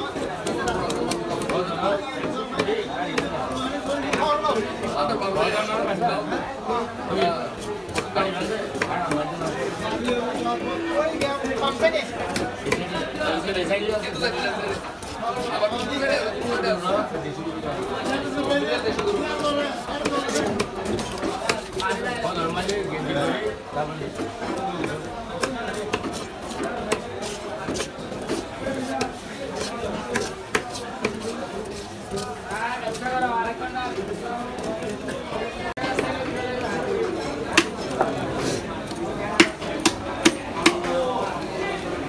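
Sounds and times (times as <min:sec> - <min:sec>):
market chatter: 0:00.0 - 0:42.0
knife chopping on wooden block: 0:24.2 - 0:31.2, 0:37.5 - 0:38.1, 0:39.3 - 0:41.0.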